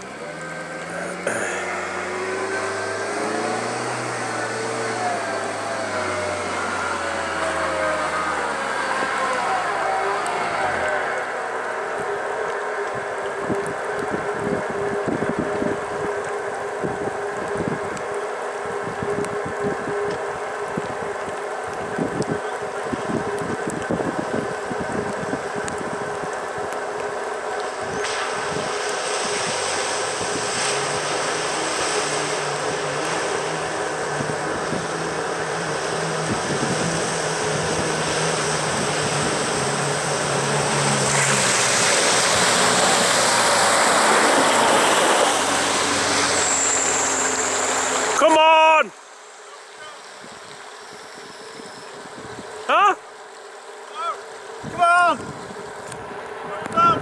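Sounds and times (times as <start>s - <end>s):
floodwater rushing: 0.0s - 57.0s
vehicle bow wave splashing: 0.0s - 57.0s
vehicle engine hum: 0.0s - 57.0s
wind on microphone: 18.7s - 26.7s, 33.9s - 40.0s, 54.6s - 57.0s.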